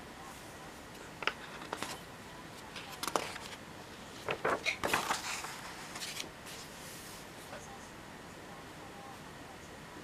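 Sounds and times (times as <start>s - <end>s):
paper pages crackling and rustling: 1.2s - 2.0s, 2.6s - 6.8s.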